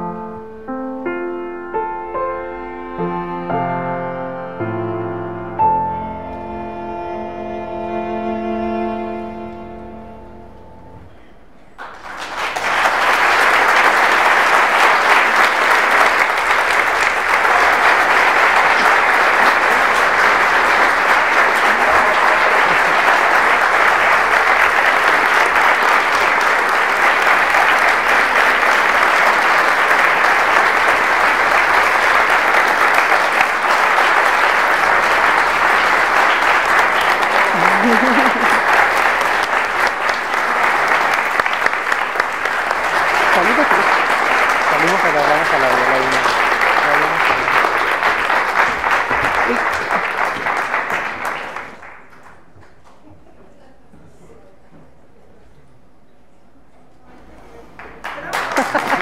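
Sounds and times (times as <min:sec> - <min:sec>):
audience applauding: 0:11.7 - 0:53.2, 0:57.7 - 0:59.0.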